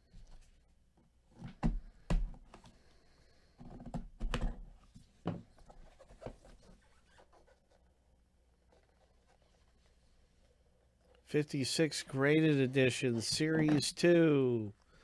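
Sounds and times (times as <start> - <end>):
gloved hands rubbing cardboard: 5.7 - 11.0.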